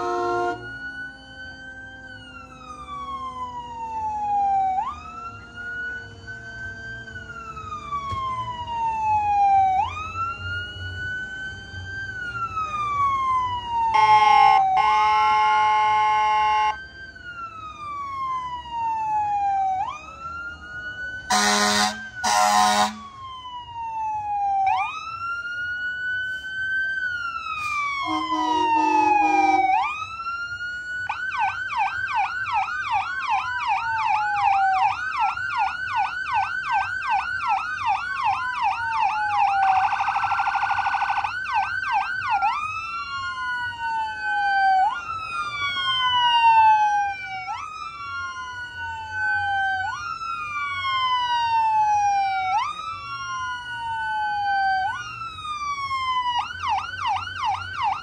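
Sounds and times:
buzzing horn tone: 0.0s - 0.7s, 21.3s - 23.0s, 28.0s - 29.8s
vehicle horn blasts: 0.0s - 0.7s, 21.3s - 23.0s, 28.0s - 29.7s
emergency sirens wailing: 0.0s - 58.0s.

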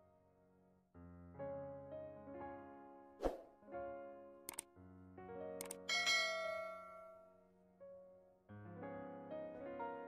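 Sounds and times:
soft piano music: 0.0s - 10.0s
quick clicks: 4.5s - 4.7s, 5.6s - 5.8s
bright bell ding: 5.9s - 7.3s.

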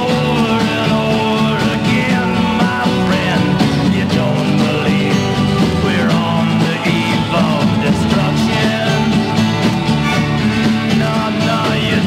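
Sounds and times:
folk-rock band from vinyl record: 0.0s - 12.0s.

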